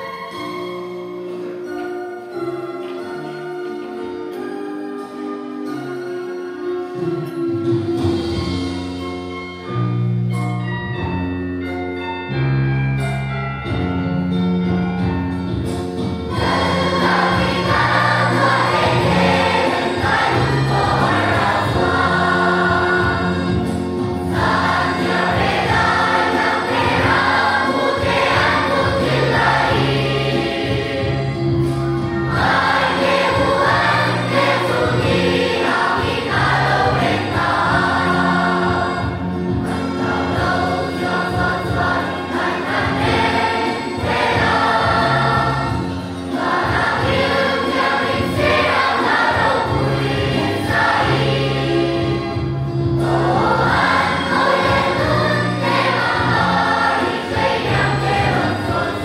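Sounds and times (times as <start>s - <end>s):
children's choir singing a carol: 0.0s - 7.3s, 16.2s - 59.0s.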